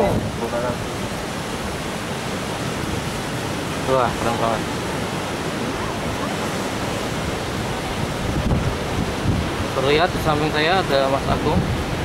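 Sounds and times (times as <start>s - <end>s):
ocean surf breaking: 0.0s - 12.0s
wind buffeting microphone: 0.0s - 12.0s.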